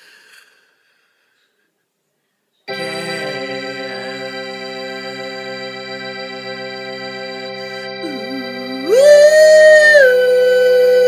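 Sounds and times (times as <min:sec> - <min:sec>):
held organ-like keyboard chord: 0:02.7 - 0:11.0.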